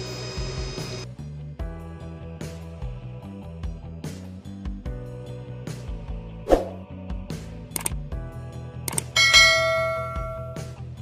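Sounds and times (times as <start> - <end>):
background music: 0.0 - 11.0
bell-like chime: 9.2 - 10.8.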